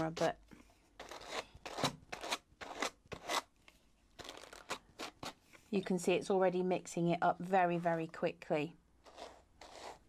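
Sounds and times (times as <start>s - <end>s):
hand carders scratching wool: 9.0s - 10.0s.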